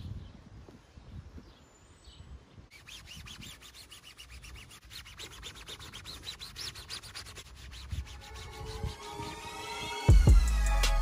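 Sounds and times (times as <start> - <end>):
gloved hand rubbing rubber tyre: 2.7 - 9.2
music: 8.1 - 11.0.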